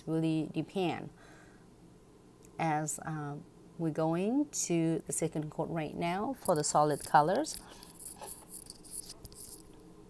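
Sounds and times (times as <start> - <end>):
low steady hum: 0.0 - 10.0
brush scratching across nail: 6.4 - 9.8.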